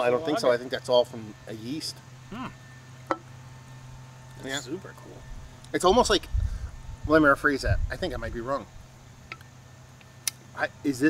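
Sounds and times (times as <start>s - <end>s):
faint low hum: 0.0s - 11.0s
man saying mmm: 2.3s - 2.6s.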